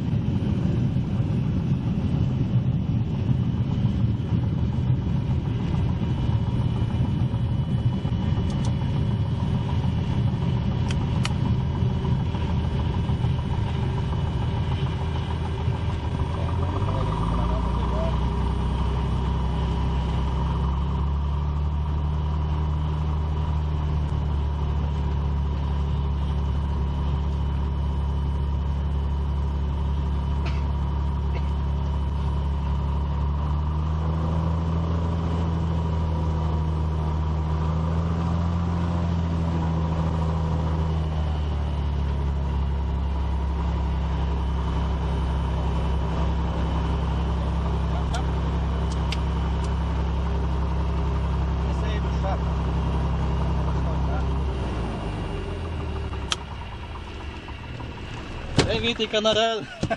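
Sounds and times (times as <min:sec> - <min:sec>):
propeller plane engine running: 0:00.0 - 0:59.9.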